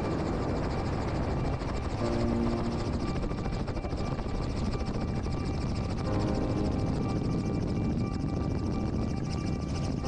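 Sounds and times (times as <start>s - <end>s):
helicopter rotor and engine: 0.0s - 10.0s.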